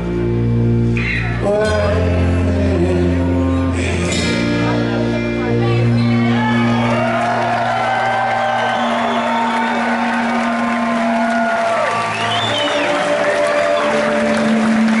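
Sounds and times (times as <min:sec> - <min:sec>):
live rock band: 0:00.0 - 0:15.0
crowd cheering and applauding: 0:06.0 - 0:15.0
audience whooping and whistling: 0:06.4 - 0:15.0.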